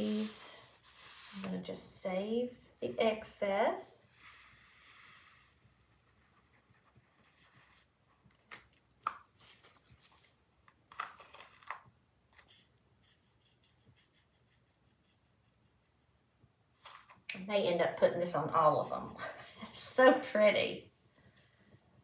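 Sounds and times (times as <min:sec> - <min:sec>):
stick scooping through glitter: 0:00.0 - 0:01.7, 0:03.4 - 0:05.6
glitter pouring hiss: 0:04.1 - 0:05.5.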